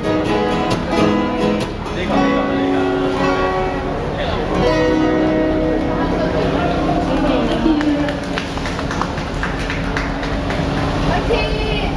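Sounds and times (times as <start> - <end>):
acoustic guitar song: 0.0 - 11.9
crowd chatter: 0.0 - 11.9
steady background hum: 0.0 - 11.9
hand claps: 7.1 - 10.9.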